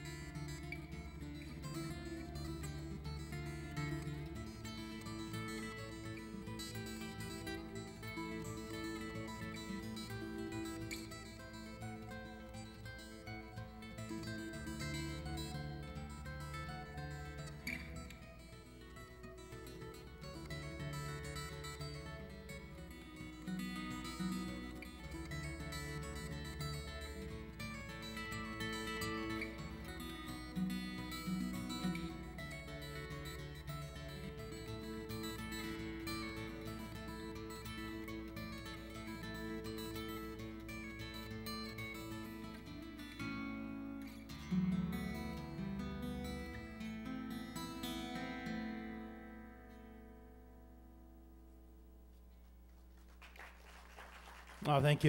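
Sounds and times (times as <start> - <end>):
fingerstyle acoustic guitar: 0.0 - 53.3.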